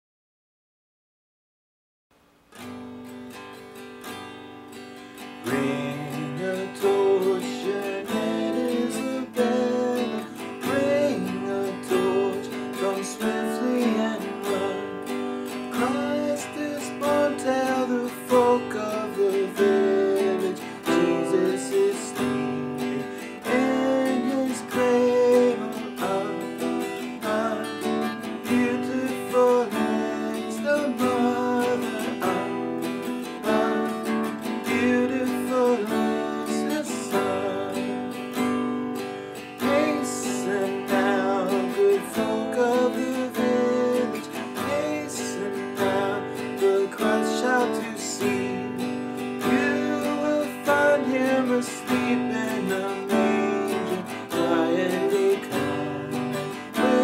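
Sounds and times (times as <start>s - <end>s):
acoustic guitar strumming: 2.4s - 57.0s
man singing: 5.4s - 57.0s.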